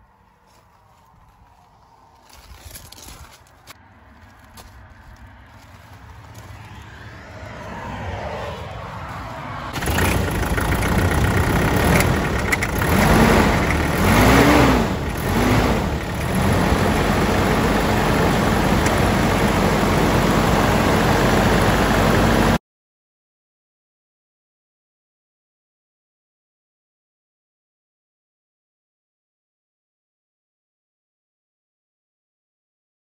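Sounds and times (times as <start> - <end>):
diesel engine revving and idling: 4.3 - 22.6.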